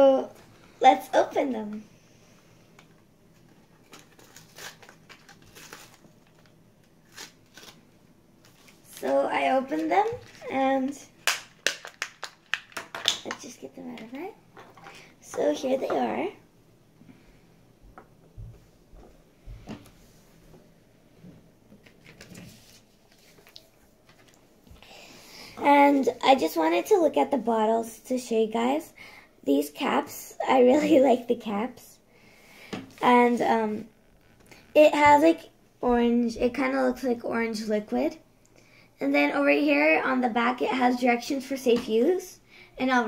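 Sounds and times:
packaging rustling and crinkling: 2.8 - 7.8, 8.4 - 13.4
card packaging tearing: 3.9 - 7.8.

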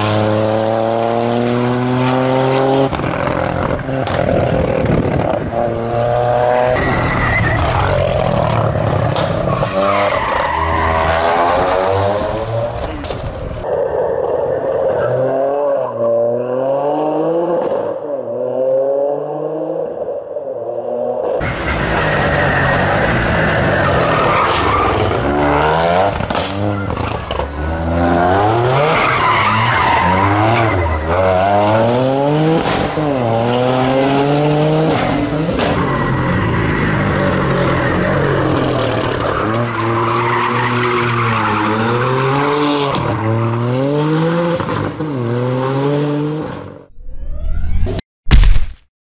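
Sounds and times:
tyres squealing on tarmac: 6.8 - 8.2, 21.4 - 25.2, 35.3 - 43.6.

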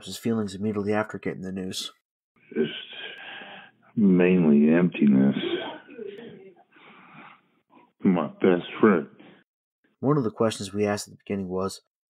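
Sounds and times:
soft breath: 2.6 - 3.9, 6.7 - 7.9.

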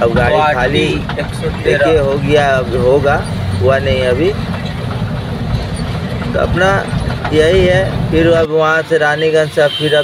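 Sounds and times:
truck engine drone: 0.0 - 9.0
road noise: 0.0 - 10.0.

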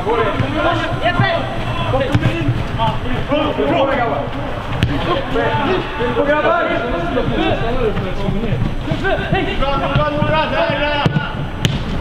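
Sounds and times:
football players shouting: 0.0 - 11.5
ball being kicked: 11.0 - 12.0.

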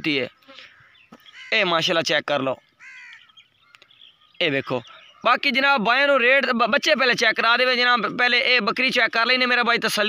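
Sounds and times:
man speaking: 0.0 - 0.4, 1.5 - 2.6, 4.4 - 10.0
bird call: 0.3 - 1.7, 2.6 - 5.4.

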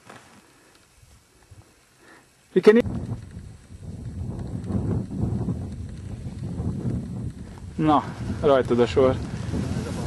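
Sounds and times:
microphone handling noise: 2.8 - 10.0
wind on microphone: 2.8 - 10.0.

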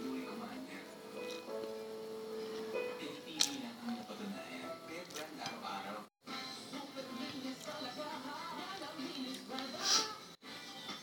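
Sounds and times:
television voices talking: 0.0 - 1.5, 2.3 - 10.4
background music: 0.0 - 11.0.

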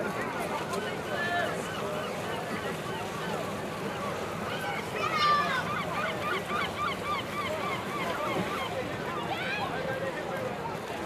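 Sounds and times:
crowd hubbub: 0.0 - 11.0
birds calling: 0.7 - 9.4.

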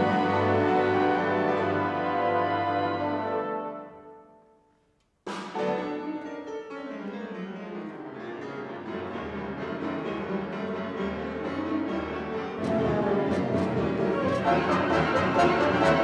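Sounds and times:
wind band playing softly: 0.0 - 4.4, 12.6 - 16.0
grand pianos playing: 0.0 - 4.6, 5.4 - 16.0
held brass chord: 12.6 - 16.0.

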